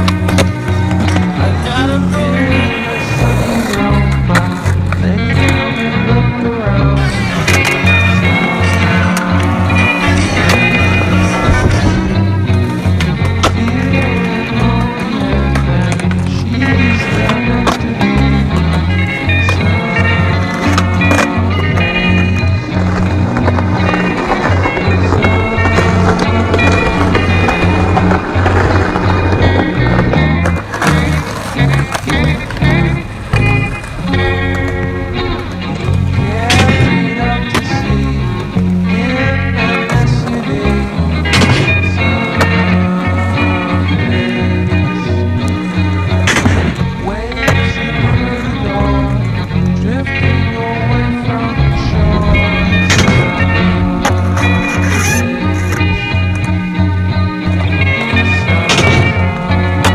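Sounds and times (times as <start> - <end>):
music with bass line: 0.0 - 59.9
skateboard clacks: 0.0 - 59.9
skateboard wheels rolling on pavement: 0.0 - 59.9.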